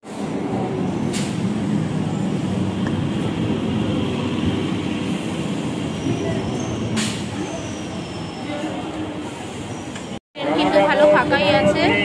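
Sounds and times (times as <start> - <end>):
high squeals of train: 0.2 - 2.6, 3.8 - 12.0.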